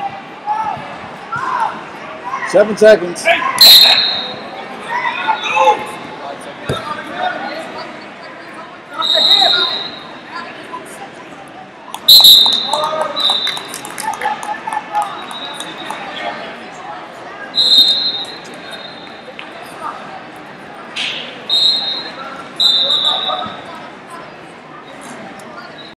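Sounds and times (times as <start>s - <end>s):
crowd voices and shouts: 0.0s - 26.0s
referee's whistle blasts: 3.6s - 4.4s, 9.0s - 10.1s, 12.1s - 13.7s, 17.5s - 19.2s, 21.5s - 23.6s.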